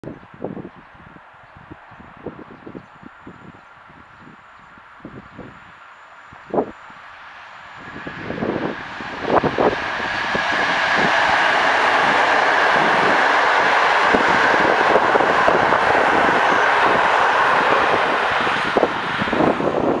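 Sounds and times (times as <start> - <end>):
train passing at speed: 4.4 - 20.0.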